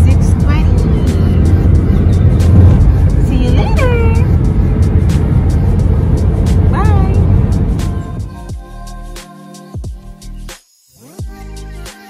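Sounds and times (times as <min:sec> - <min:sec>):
car cabin road rumble: 0:00.0 - 0:08.4.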